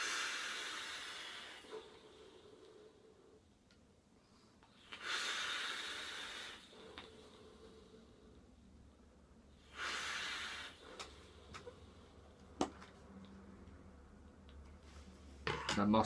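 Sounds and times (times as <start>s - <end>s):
air hissing through vape: 0.0s - 3.0s, 4.7s - 8.2s, 9.6s - 12.0s
forceful exhale: 0.0s - 3.2s, 4.7s - 8.3s, 9.6s - 12.1s.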